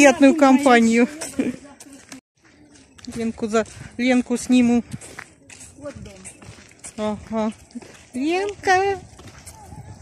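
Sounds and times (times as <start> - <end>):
faint footsteps on dirt road: 0.0 - 10.0.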